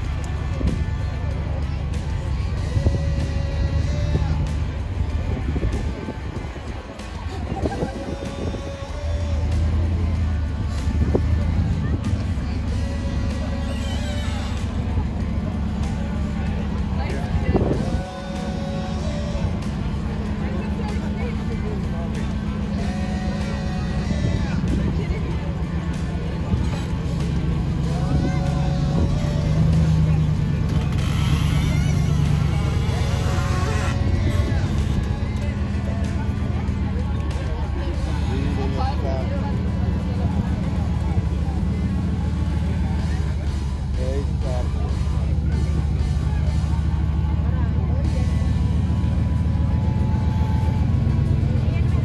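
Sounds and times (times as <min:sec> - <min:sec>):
background music: 0:00.0 - 0:52.0
buggy engine under load: 0:00.0 - 0:52.0
crowd voices: 0:00.0 - 0:52.0.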